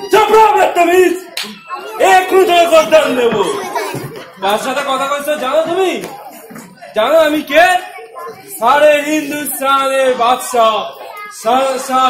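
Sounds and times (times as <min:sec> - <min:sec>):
loud voices: 0:00.0 - 0:12.0.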